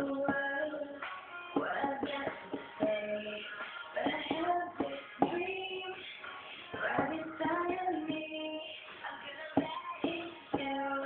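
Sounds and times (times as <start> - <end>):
music with struck notes: 0.0 - 8.4, 9.5 - 11.0.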